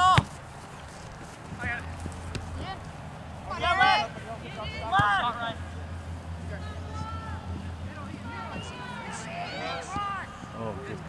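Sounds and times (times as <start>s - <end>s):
faint voices: 3.4s - 11.0s.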